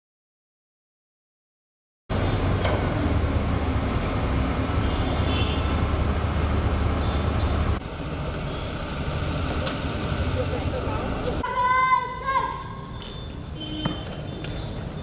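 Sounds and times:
traffic rumble with low hum: 2.1 - 15.0.

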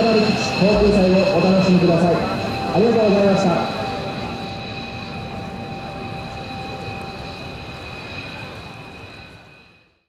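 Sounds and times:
jet engines whining and rumbling: 0.0 - 10.0.

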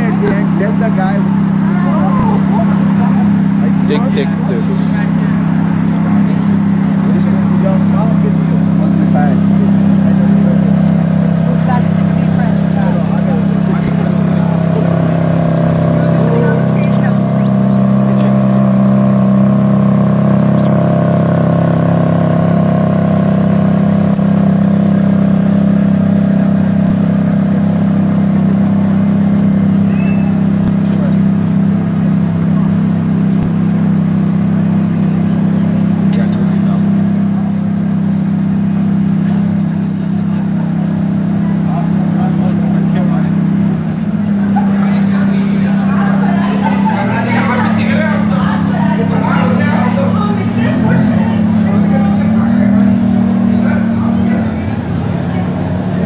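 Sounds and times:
voices: 0.0 - 21.2, 22.8 - 56.0
vehicle engine droning: 0.0 - 56.0.

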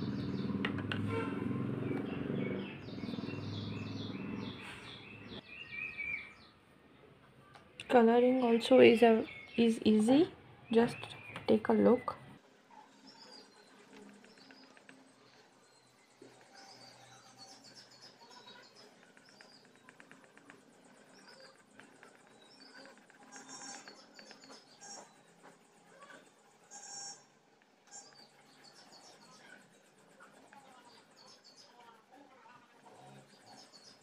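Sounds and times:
birds chirping: 0.0 - 6.6, 7.8 - 31.9, 32.8 - 34.0
pencil scratching on paper: 13.6 - 15.4, 18.3 - 26.3.

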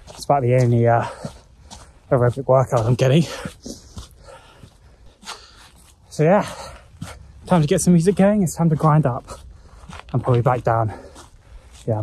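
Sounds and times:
man breathing hard: 1.0 - 2.1, 3.2 - 7.5, 9.2 - 10.1, 10.8 - 11.9.

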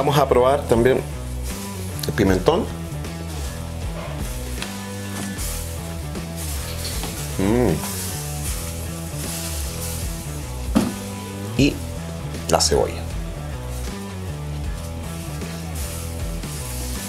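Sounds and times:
background music with bass and guitar: 0.0 - 17.0
short voice sound: 7.4 - 7.9.

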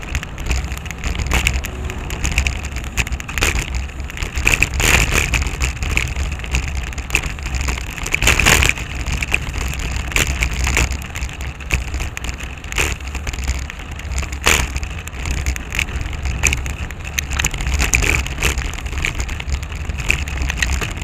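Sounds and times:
bicycle rattling on rough pavement: 0.0 - 21.0
wind rumble on microphone: 0.0 - 21.0.

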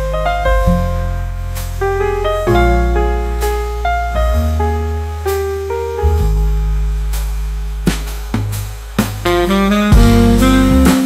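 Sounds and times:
light drum kit strokes: 0.0 - 11.0
piano chords and melody: 0.0 - 11.0
upright bass notes: 0.0 - 11.0.

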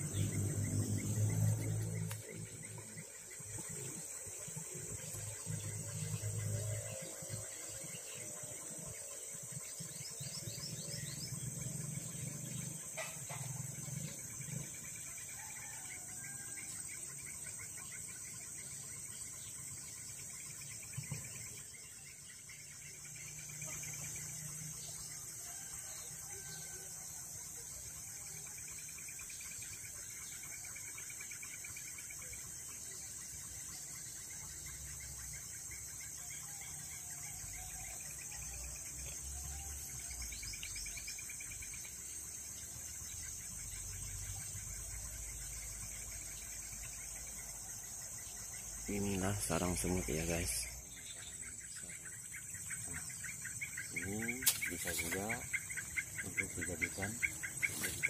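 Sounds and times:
insects chorus: 0.0 - 58.0
faint bird calls: 48.5 - 58.0.

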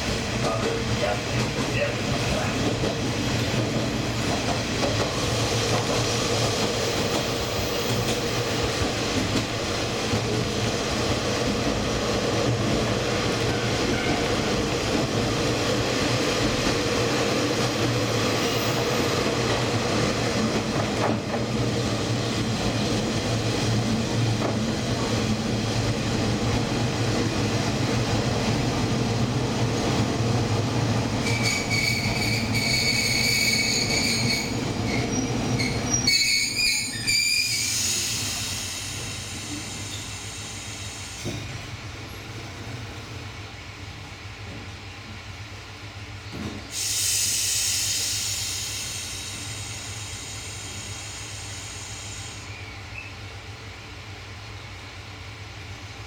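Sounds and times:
diesel train rumbling on rails: 0.0 - 56.0
train brakes squealing: 13.4 - 14.6, 17.7 - 19.4, 31.2 - 41.6, 46.2 - 53.3.

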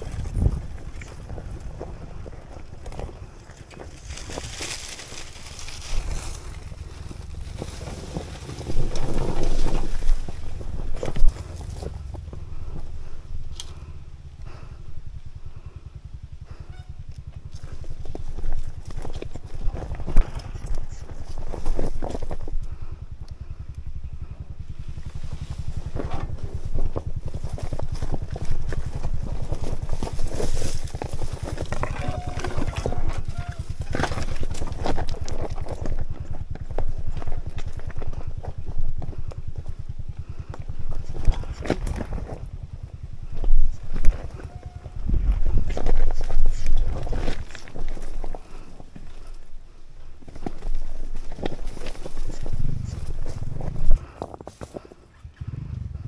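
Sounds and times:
dirt bike engine at low revs: 0.0 - 56.0.

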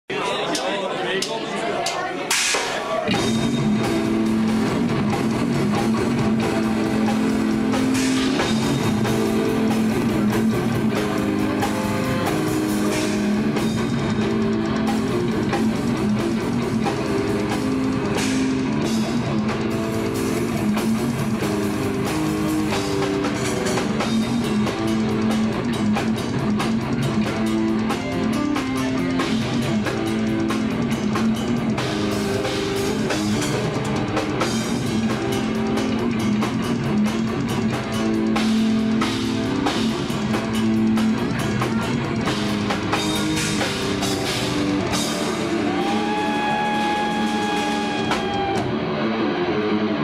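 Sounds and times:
drum kit: 0.5 - 50.0
distorted electric guitars: 2.6 - 50.0
bass guitar: 2.9 - 50.0.

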